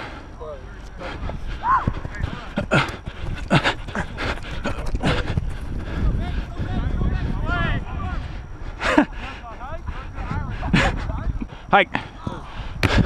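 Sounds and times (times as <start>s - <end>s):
heavy breathing: 0.0s - 6.8s, 8.1s - 13.0s
running footfalls on grass: 0.8s - 8.4s
wind rumble on microphone: 1.0s - 13.0s.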